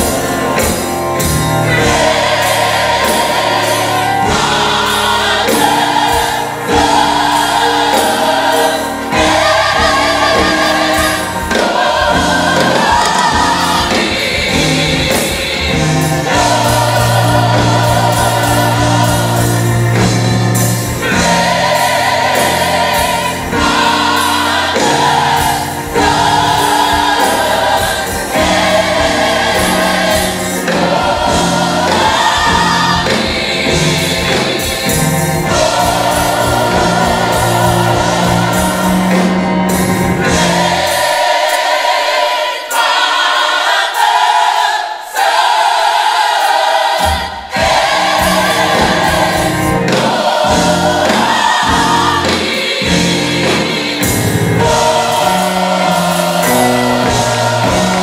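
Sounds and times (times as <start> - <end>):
drum hits: 0.0 - 41.4, 47.0 - 58.0
band accompaniment: 0.0 - 58.0
gospel choir singing: 0.0 - 58.0.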